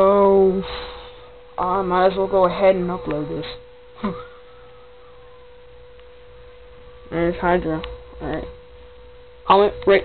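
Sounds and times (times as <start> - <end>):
low background hum: 0.0 - 10.0
steady electrical tone: 0.0 - 10.0.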